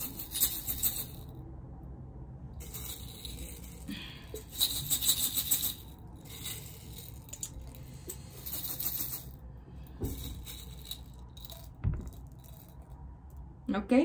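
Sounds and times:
beads rattling in glass jar: 0.0 - 1.3, 2.6 - 13.3.

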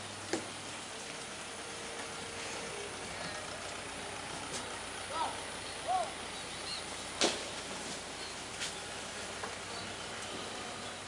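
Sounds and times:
faint hum: 0.0 - 11.0
outdoor ambient hiss: 0.0 - 11.0.

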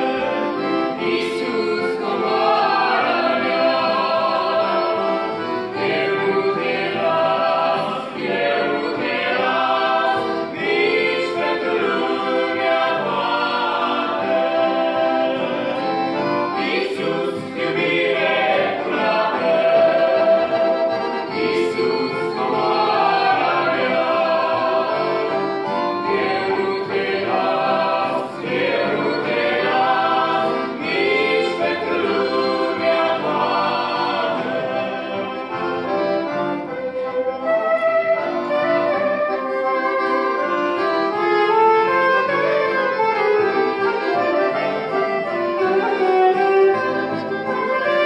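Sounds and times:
group singing in harmony: 0.0 - 36.9, 40.4 - 48.0
stringed instrument accompaniment: 0.0 - 48.0.

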